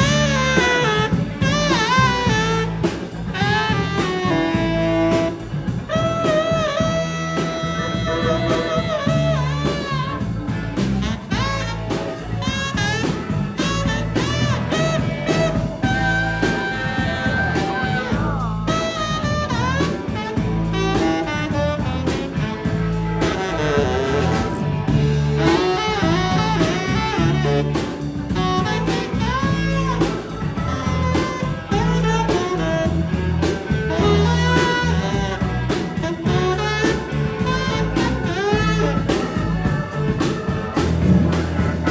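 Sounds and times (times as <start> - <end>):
drum kit beat: 0.0 - 41.9
low bass part: 0.0 - 41.9
tenor saxophone melody: 0.0 - 41.9.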